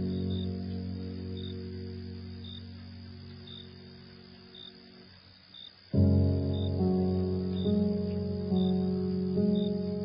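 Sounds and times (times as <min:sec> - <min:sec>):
cricket chirps: 0:00.0 - 0:10.0.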